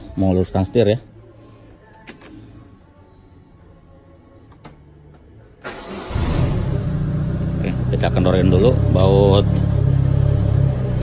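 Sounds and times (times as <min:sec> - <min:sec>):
car engine cranking and idling: 0:05.6 - 0:11.0.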